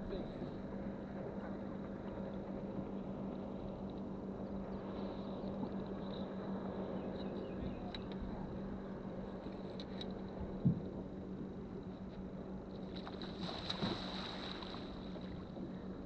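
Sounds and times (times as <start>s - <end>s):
steady low hum: 0.0s - 16.0s
water noise: 12.6s - 16.0s.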